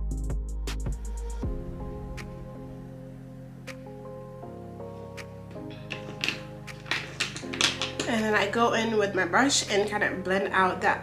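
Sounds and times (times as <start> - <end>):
music with soft sustained chords: 0.0 - 11.0.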